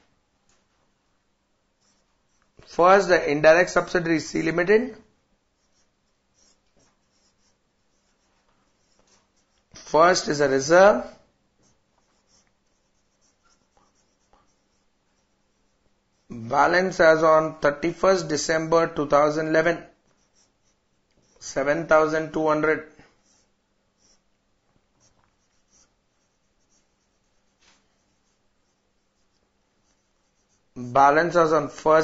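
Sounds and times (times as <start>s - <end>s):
marker pen scratching on whiteboard: 1.8s - 4.9s, 5.5s - 32.0s.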